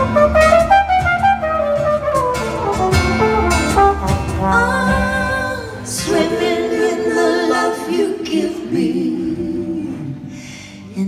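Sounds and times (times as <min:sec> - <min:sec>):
wordless singing with vibrato: 0:04.4 - 0:11.0.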